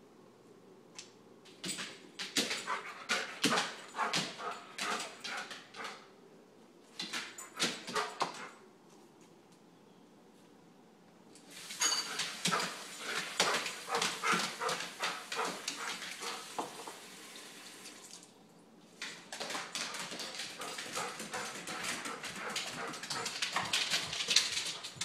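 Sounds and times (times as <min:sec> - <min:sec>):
claws clicking on tiled floor: 0:00.9 - 0:06.1, 0:06.8 - 0:09.6, 0:11.4 - 0:16.9, 0:19.0 - 0:25.0.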